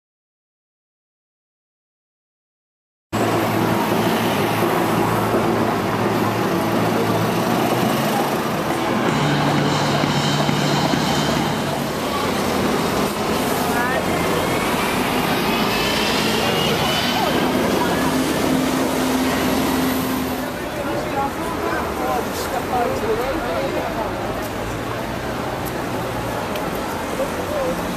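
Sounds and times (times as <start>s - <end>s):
bus engine and road noise: 3.2s - 27.9s
indistinct voices: 3.2s - 27.9s.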